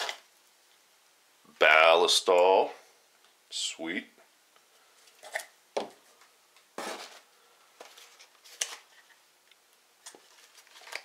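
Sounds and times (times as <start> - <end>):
metal cans set down on table: 6.8 - 7.2.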